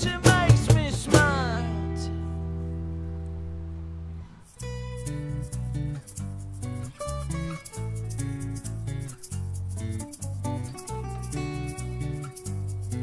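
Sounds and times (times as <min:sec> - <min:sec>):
acoustic guitars: 0:00.0 - 0:13.0
plucked bass notes: 0:00.0 - 0:13.0.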